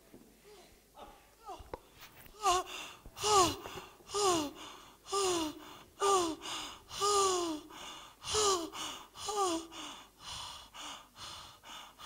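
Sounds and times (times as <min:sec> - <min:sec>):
girl gasping breaths: 0:00.4 - 0:12.0.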